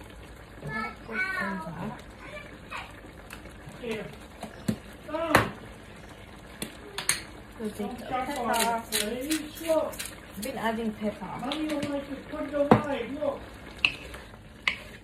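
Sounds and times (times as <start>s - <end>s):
people talking: 7.6s - 13.4s.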